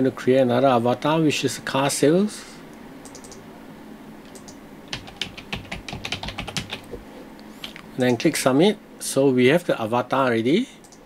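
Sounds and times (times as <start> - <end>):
computer keyboard typing: 3.0 - 3.4, 4.3 - 7.0.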